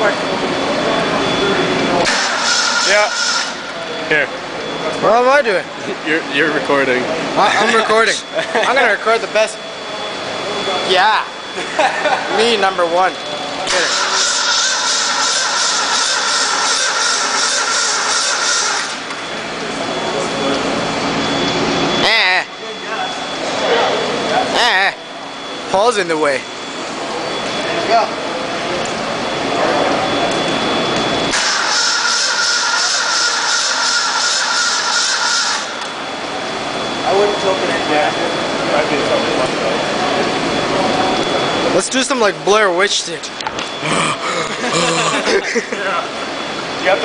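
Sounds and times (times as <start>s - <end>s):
engine running: 0.0s - 41.8s
car engine revving on a stand: 13.7s - 19.1s.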